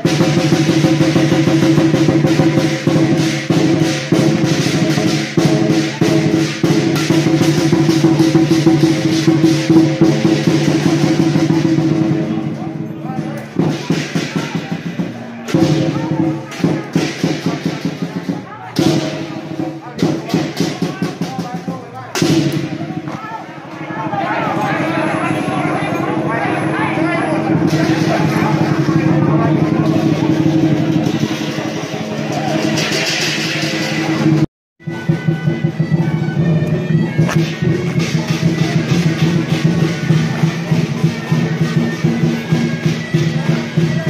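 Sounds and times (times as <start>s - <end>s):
drum fast continuous roll: 0.0s - 44.0s
gongs and cymbals ringing: 0.0s - 44.0s
gong: 23.8s - 34.4s.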